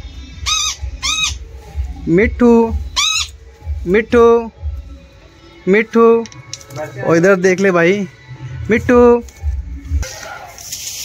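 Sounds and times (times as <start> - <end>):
parrot harsh calls: 0.4 - 1.4, 2.9 - 3.4.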